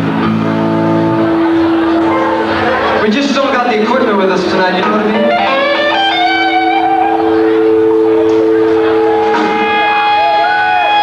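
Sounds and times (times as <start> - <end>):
electric guitar chord and notes: 0.0 - 11.0.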